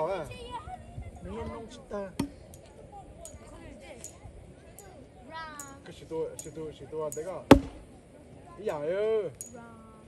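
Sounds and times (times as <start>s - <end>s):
axe chopping into log: 7.5s - 7.8s.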